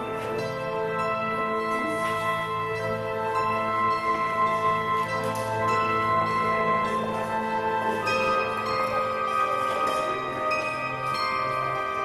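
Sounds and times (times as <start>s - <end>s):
bell-like background music: 0.0s - 12.0s.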